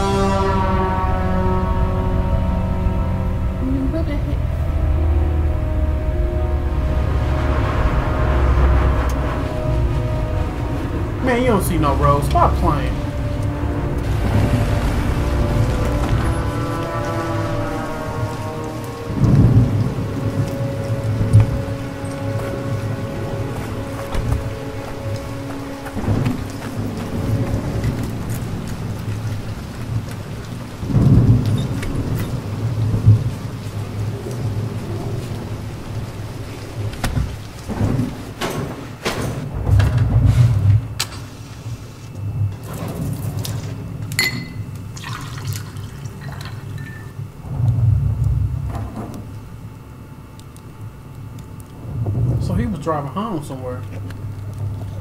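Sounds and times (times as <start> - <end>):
low music drone: 0.0 - 55.0
steady rain: 0.0 - 55.0
thunder rumbling: 0.0 - 55.0.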